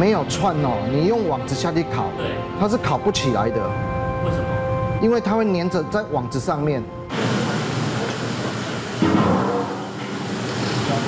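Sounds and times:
steam hissing: 7.1 - 9.0.

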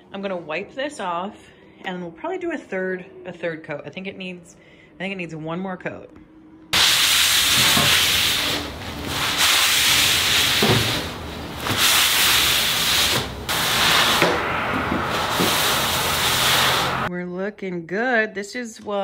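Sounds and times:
cloth rag rubbing on concrete: 6.8 - 13.8.

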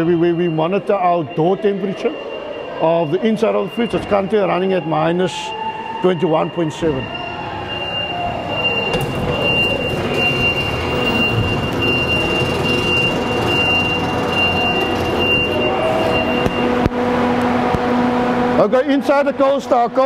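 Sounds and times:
refrigeration machinery humming: 5.2 - 20.0.

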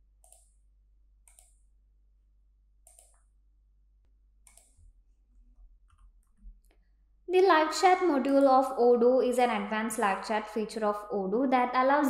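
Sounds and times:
computer mouse clicks: 0.2 - 0.5, 1.2 - 1.6, 2.8 - 3.3, 4.4 - 4.8.

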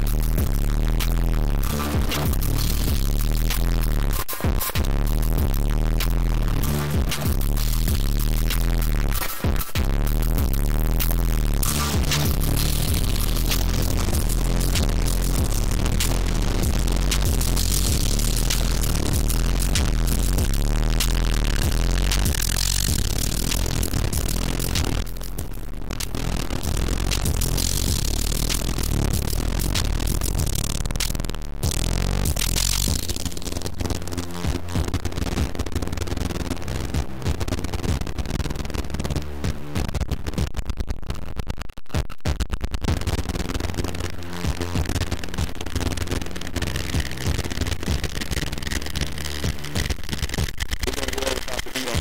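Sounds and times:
crunchy electronic music: 0.0 - 52.0.

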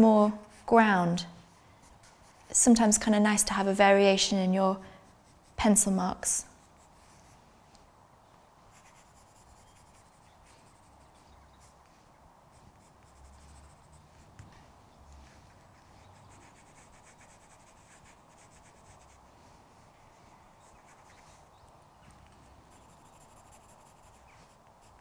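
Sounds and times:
pencil scratching on paper: 1.8 - 2.7, 8.7 - 11.8, 12.5 - 14.4, 15.4 - 19.2, 22.7 - 25.0.

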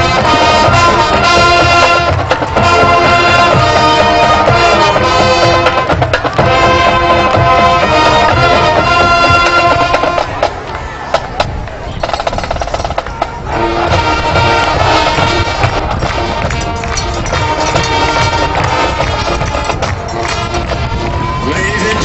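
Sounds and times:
drum strokes: 0.0 - 21.1
marching band playing: 0.0 - 22.0.

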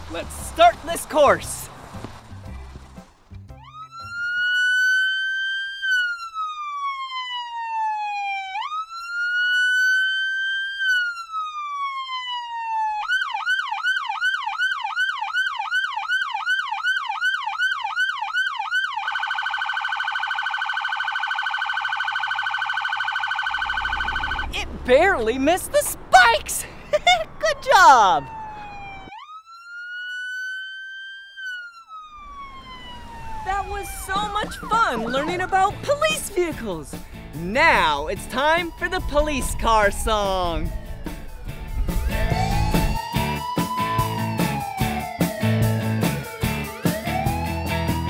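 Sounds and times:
police car siren: 0.0 - 1.7, 3.6 - 48.0.

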